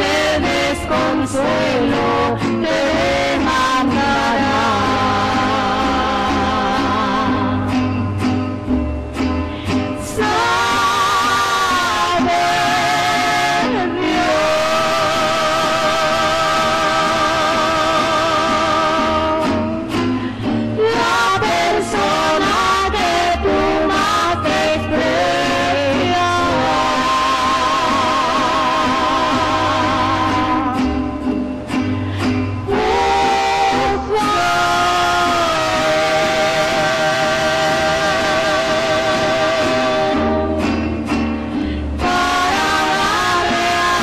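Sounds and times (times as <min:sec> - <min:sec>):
woman singing into microphone: 0:00.0 - 0:07.8, 0:10.0 - 0:19.8, 0:20.8 - 0:31.1, 0:32.6 - 0:40.7, 0:42.0 - 0:44.0
band accompaniment: 0:00.0 - 0:44.0.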